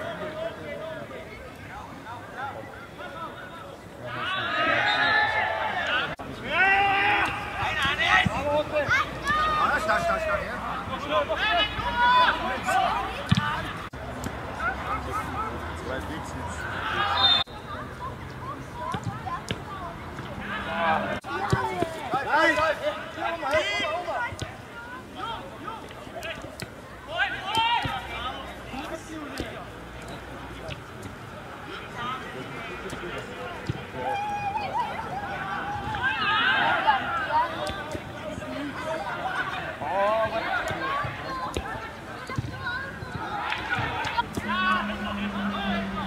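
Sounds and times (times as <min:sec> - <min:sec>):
men shouting and calling: 0:04.1 - 0:17.4, 0:20.4 - 0:26.4, 0:27.0 - 0:29.6, 0:31.6 - 0:41.8, 0:42.7 - 0:46.0.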